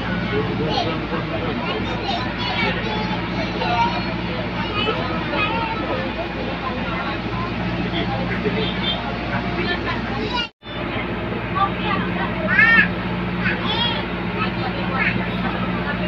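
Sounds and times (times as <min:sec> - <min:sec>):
bus engine drone: 0:00.0 - 0:16.0
people chattering: 0:00.0 - 0:16.0.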